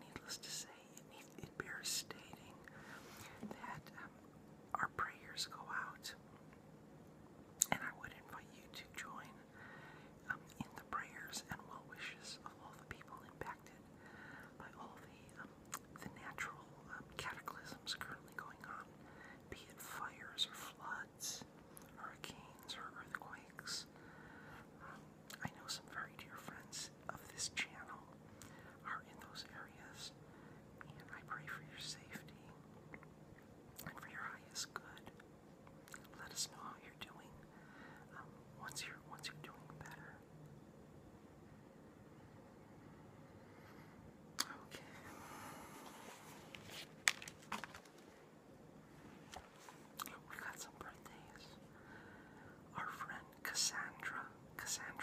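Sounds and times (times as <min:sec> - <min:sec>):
person whispering: 0:00.0 - 0:06.2, 0:07.6 - 0:09.4, 0:10.2 - 0:13.9, 0:14.6 - 0:18.9, 0:19.5 - 0:23.9, 0:24.8 - 0:28.2, 0:28.8 - 0:30.2, 0:30.8 - 0:32.6, 0:33.8 - 0:35.2, 0:35.9 - 0:37.4, 0:38.0 - 0:40.2, 0:44.4 - 0:46.2, 0:49.6 - 0:51.7, 0:52.7 - 0:55.0.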